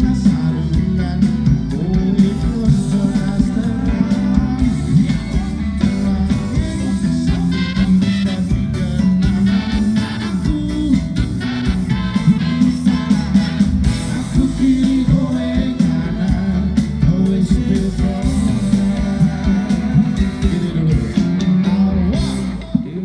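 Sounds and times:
person singing: 0.0 - 11.1, 11.8 - 23.0
live band with guitars and drums: 0.0 - 23.0.

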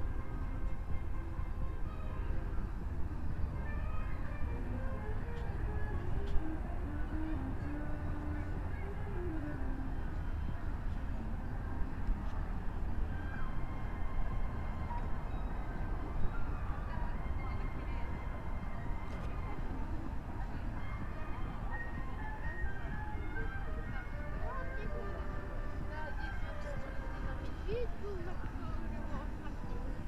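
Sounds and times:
faint music: 0.0 - 30.0.

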